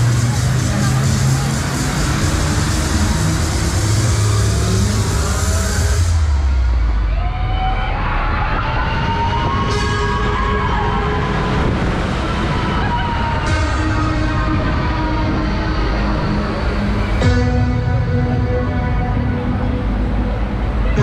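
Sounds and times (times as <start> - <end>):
fairground music with heavy bass: 0.0 - 21.0.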